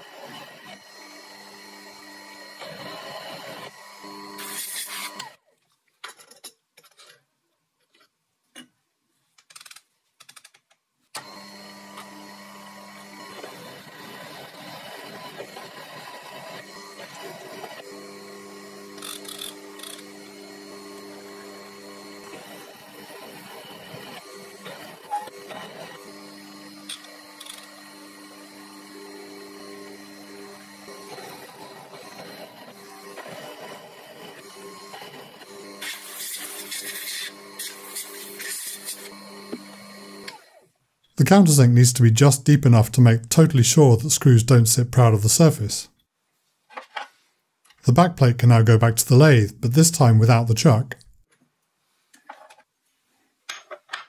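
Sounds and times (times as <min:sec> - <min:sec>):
milling machine motor running: 0:00.0 - 0:05.3, 0:11.2 - 0:40.6
drill cutting into steel: 0:00.0 - 0:05.4, 0:11.2 - 0:40.7.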